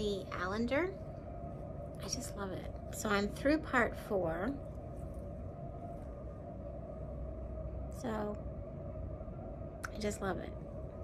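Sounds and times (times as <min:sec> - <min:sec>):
electrical hum: 0:00.0 - 0:11.0
faint whining tone: 0:00.0 - 0:11.0.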